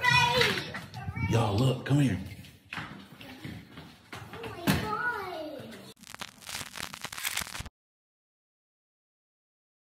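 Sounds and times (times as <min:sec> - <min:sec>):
old film crackle and static: 0:05.9 - 0:07.7.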